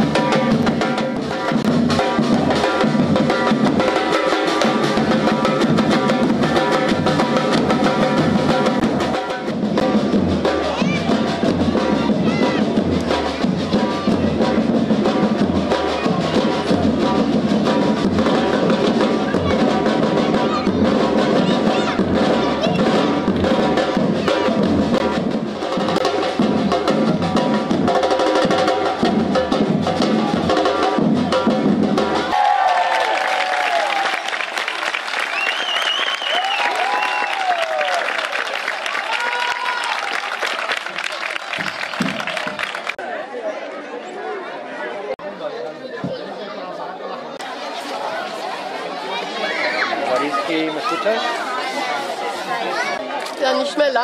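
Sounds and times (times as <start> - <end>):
bass drums beaten: 0.0 - 32.3
snare-like drum strokes: 0.0 - 32.4.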